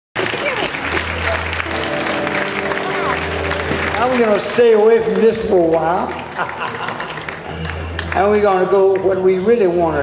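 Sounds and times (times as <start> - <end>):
audience applauding and cheering: 0.2 - 9.3
sustained amplified band chord: 0.7 - 6.4.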